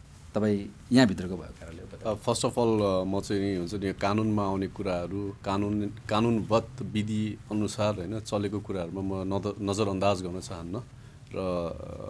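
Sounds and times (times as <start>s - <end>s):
man speaking: 0.4s - 12.0s.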